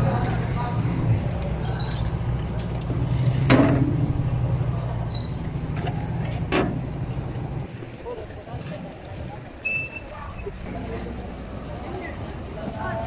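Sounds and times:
boat engine droning: 0:00.0 - 0:08.0.

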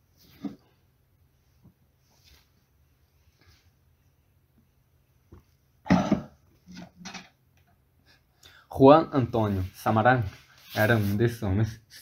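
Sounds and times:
person coughing: 0:05.9 - 0:06.3.

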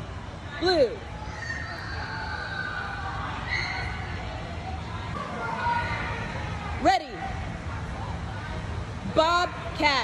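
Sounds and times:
distant high-pitched voices: 0:00.0 - 0:09.8.

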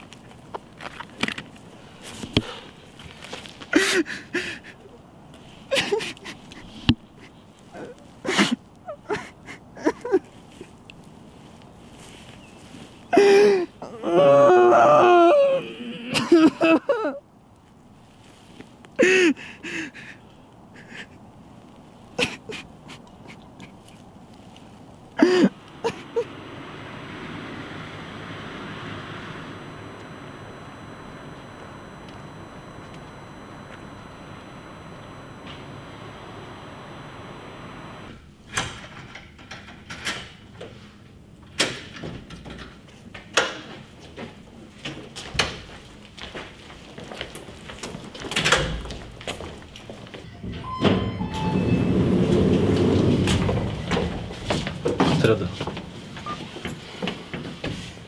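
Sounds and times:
steady hum: 0:25.0 - 0:38.3
door sliding rumble: 0:25.5 - 0:33.7, 0:50.4 - 0:55.4.

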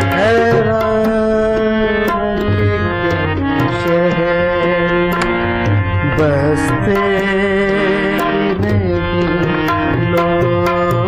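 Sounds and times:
drum strokes: 0:00.0 - 0:11.0
harmonium melody: 0:00.0 - 0:11.0.

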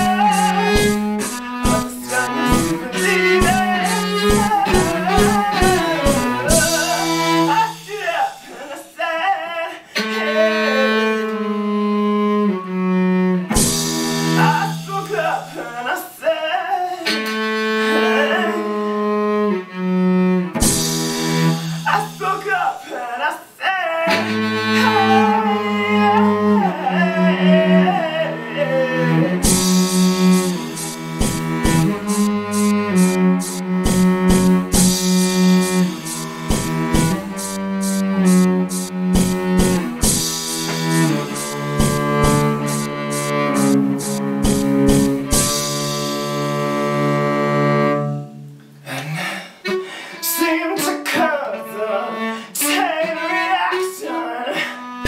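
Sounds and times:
cellos playing: 0:00.0 - 0:08.5, 0:09.9 - 0:15.7, 0:16.9 - 0:22.5, 0:24.1 - 0:55.0
person singing high lines: 0:00.0 - 0:11.0, 0:14.4 - 0:17.2, 0:21.9 - 0:29.2, 0:50.2 - 0:54.6.

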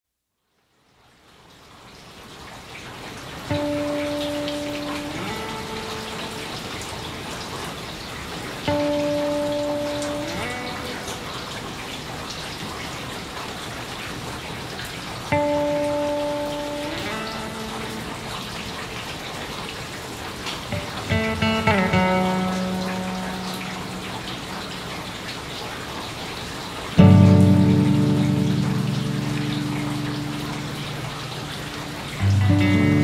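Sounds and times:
steady rain: 0:00.2 - 0:33.0.

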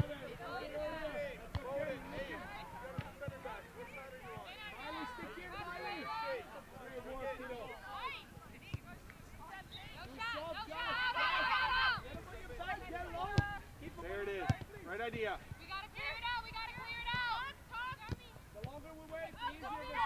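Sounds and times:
loud shout: 0:10.2 - 0:12.0, 0:19.4 - 0:20.0.

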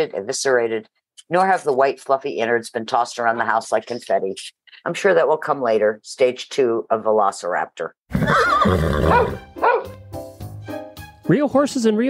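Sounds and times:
dog barking: 0:09.1 - 0:09.9.

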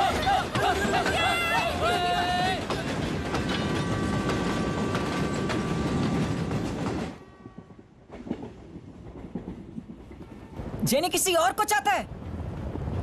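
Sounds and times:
train wheels clattering: 0:00.0 - 0:10.8.

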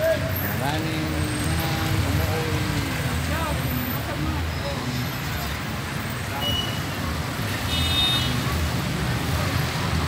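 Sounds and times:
cars and motorcycles running: 0:00.0 - 0:10.0.

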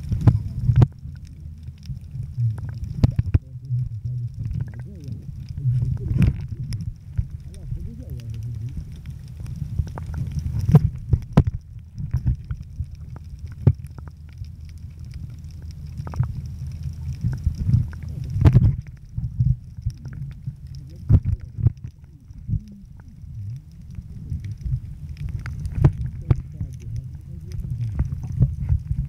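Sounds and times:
underwater rumble of moving water: 0:00.0 - 0:29.0.

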